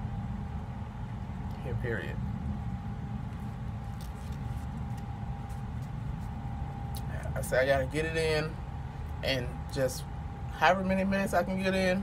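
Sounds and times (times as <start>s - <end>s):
low mechanical hum: 0.0s - 12.0s
paper wrapper crinkling: 3.3s - 6.4s.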